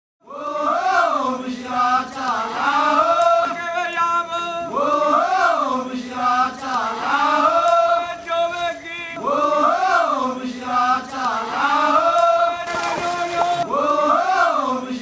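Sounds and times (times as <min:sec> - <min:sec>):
chanted singing: 0:00.2 - 0:15.0.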